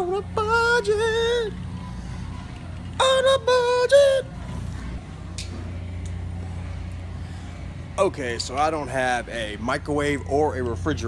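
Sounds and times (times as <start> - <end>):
supermarket background hum: 0.0 - 11.0.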